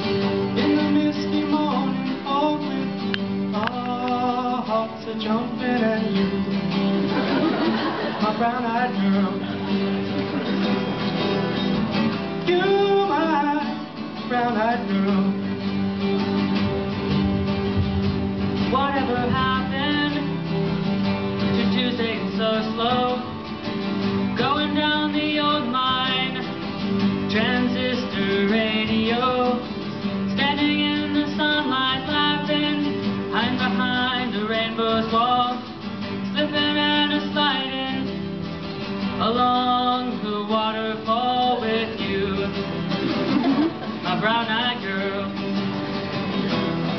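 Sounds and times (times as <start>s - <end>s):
acoustic guitar: 0.0s - 46.9s.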